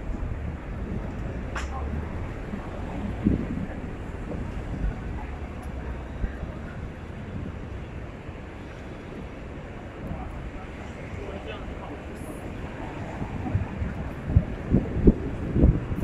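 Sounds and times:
indistinct voices of passersby: 0:00.0 - 0:16.0
road traffic hum: 0:00.0 - 0:16.0.

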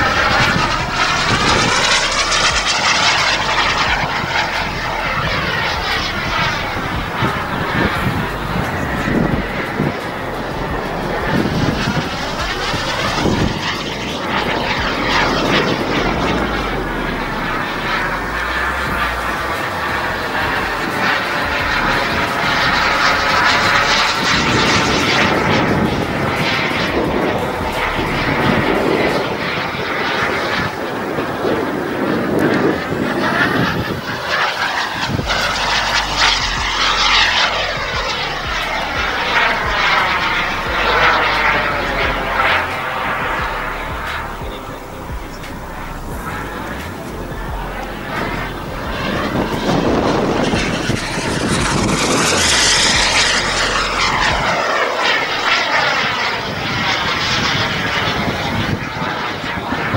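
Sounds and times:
model jet turbine in flight: 0:00.0 - 0:59.9.

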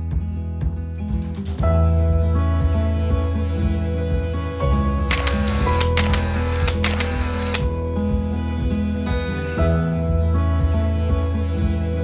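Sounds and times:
gentle background music: 0:00.0 - 0:12.0
whirring noise: 0:05.1 - 0:07.6
camera shutter clicks: 0:05.1 - 0:07.7.

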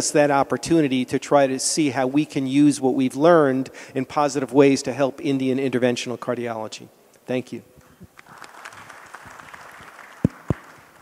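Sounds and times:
audience applauding: 0:08.2 - 0:11.0.

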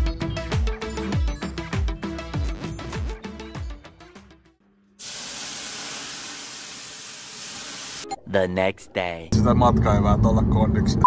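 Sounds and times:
water hissing on hot stones: 0:05.0 - 0:08.0.

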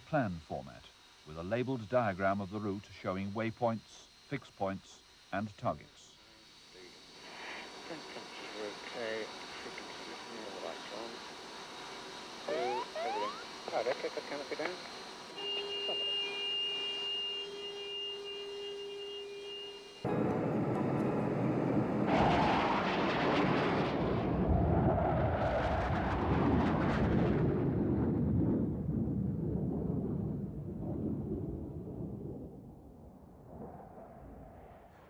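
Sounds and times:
two steady cockpit tones: 0:00.0 - 0:06.2, 0:12.4 - 0:22.0
jet flyby roar: 0:20.0 - 0:28.9.

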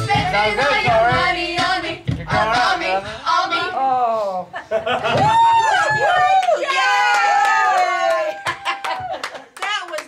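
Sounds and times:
women singing karaoke: 0:00.0 - 0:03.8.

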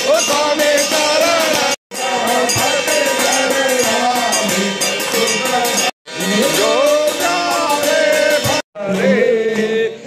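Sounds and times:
ringing metal percussion: 0:00.0 - 0:09.1
voices singing devotional music: 0:00.0 - 0:10.0.

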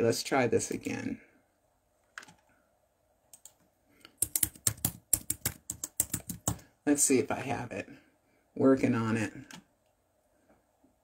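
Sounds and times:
typing on computer keyboard: 0:03.3 - 0:06.6.

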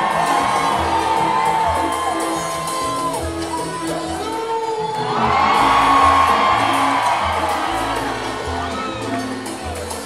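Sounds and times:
crowd cheering and whooping: 0:00.0 - 0:04.3, 0:04.9 - 0:10.0
live salsa band playing: 0:00.0 - 0:10.0.

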